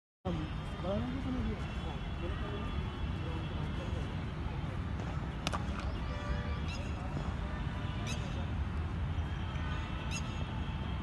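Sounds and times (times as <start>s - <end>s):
distant voices of players: 0.4s - 8.5s
cricket bat crack: 5.0s - 6.0s.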